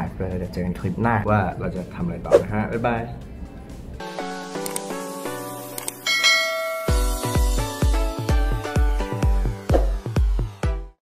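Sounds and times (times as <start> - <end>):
background music with held tones: 0.0 - 11.0
bright bell-like chime: 6.0 - 7.5.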